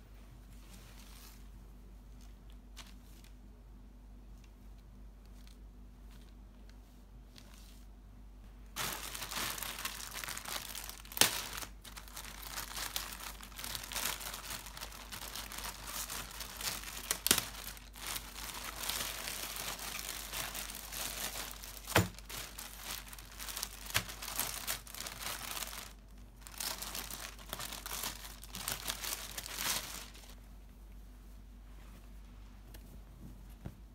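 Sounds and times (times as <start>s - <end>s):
plastic bags crinkling: 8.7s - 30.4s.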